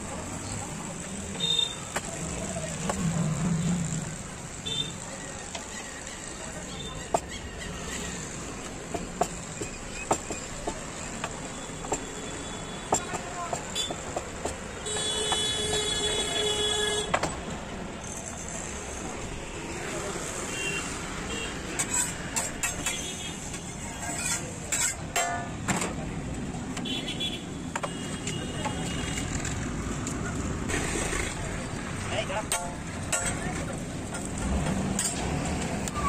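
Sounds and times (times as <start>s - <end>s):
traffic running: 0.0s - 36.0s
vehicle horn: 14.8s - 17.1s.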